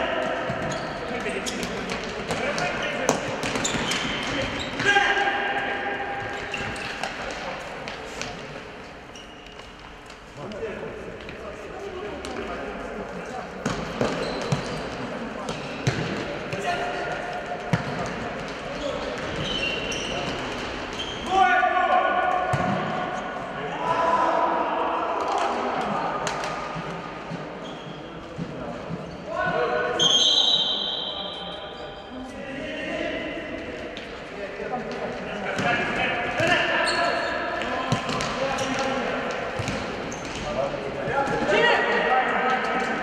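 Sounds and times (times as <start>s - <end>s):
players shouting in a hall: 4.0s - 6.8s, 21.1s - 26.4s
ball kicked and bouncing: 39.6s - 40.4s.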